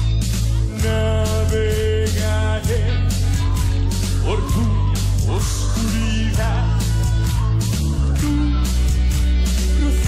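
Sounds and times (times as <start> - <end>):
bass guitar: 0.0 - 10.0
drum kit steady beat: 0.0 - 10.0.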